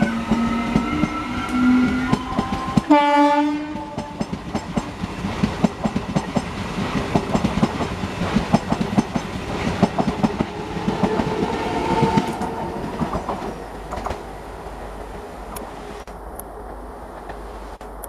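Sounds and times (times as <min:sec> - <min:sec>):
train wheels clattering: 0:00.0 - 0:03.0, 0:03.6 - 0:14.3
train humming tone: 0:00.0 - 0:18.0.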